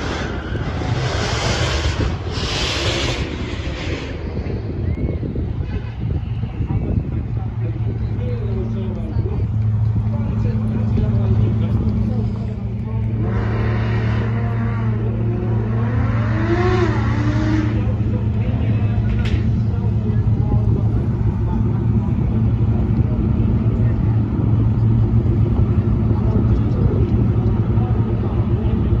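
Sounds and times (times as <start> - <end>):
engine hum: 0.0 - 29.0
people talking: 5.4 - 29.0.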